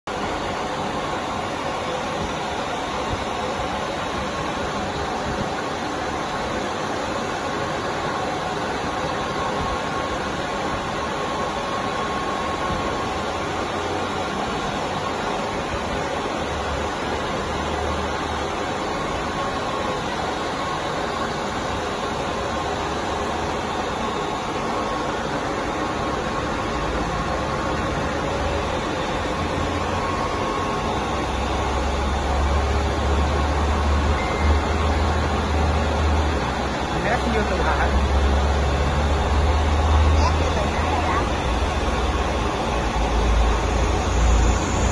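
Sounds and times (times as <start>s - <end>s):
printer whirring and hissing: 0.1s - 44.9s.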